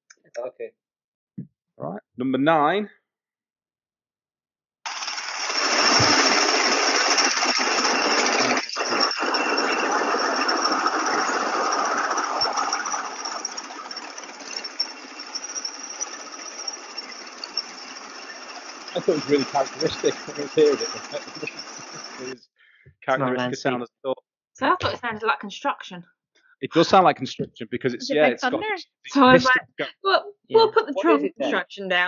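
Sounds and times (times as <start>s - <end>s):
small gasoline engines rattling: 4.9s - 22.4s.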